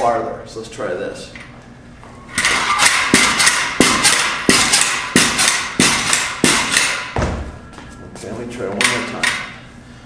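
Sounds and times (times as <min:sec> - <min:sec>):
pogo stick bouncing on hard floor: 0:02.4 - 0:07.6.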